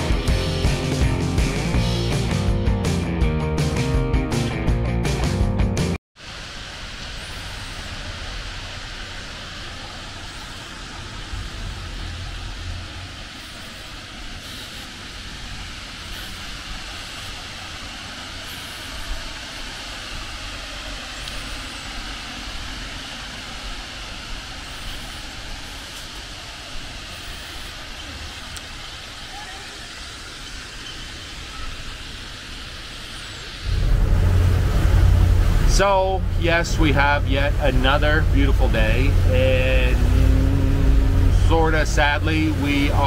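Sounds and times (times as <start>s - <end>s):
outdoor background hiss: 6.2s - 43.0s
low rumble: 8.0s - 13.4s, 33.6s - 43.0s.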